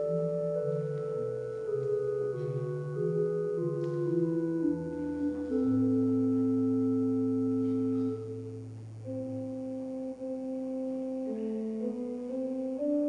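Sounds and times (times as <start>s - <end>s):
low bass note: 0.0s - 12.5s
church music on keyboard: 0.0s - 13.0s.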